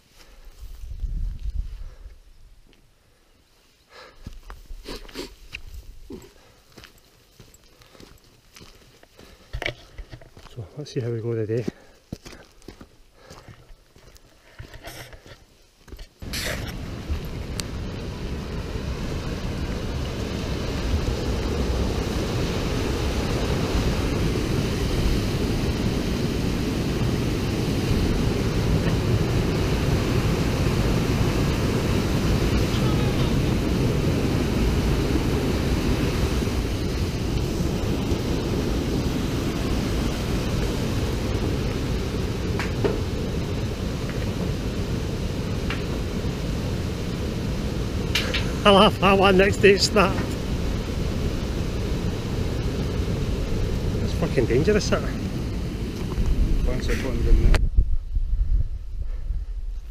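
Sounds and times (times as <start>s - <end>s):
wind buffeting microphone: 0.6s - 2.4s, 16.2s - 59.9s
stream rushing over rocks: 16.2s - 57.1s.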